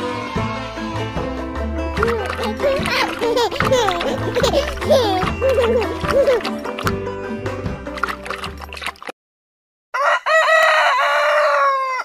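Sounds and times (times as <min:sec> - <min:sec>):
rooster crowing: 0:09.9 - 0:12.0.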